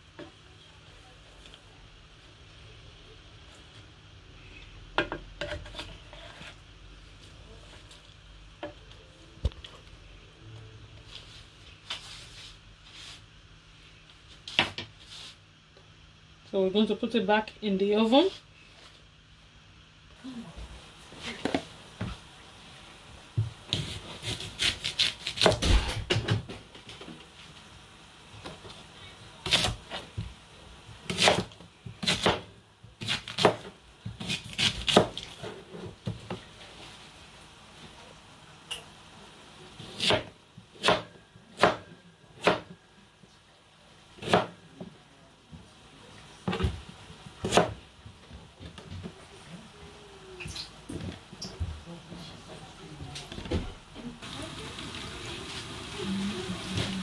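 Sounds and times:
knife chopping on plastic board: 39.8s - 42.7s, 44.2s - 44.6s.

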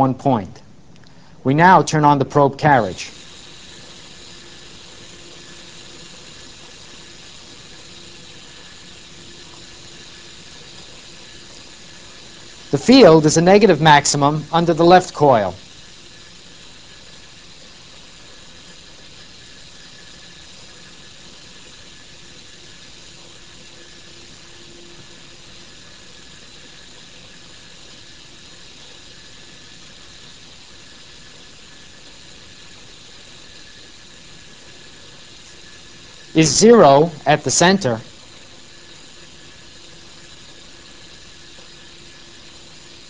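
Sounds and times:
motor-driven carriage humming: 2.7s - 43.0s.

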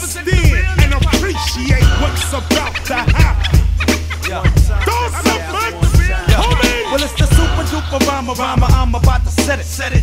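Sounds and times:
bass line: 0.0s - 10.0s
man rapping: 0.0s - 10.0s.

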